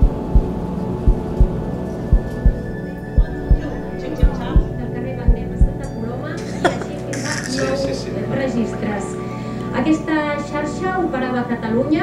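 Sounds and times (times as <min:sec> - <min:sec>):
heartbeat-like double thump: 0:00.0 - 0:05.9.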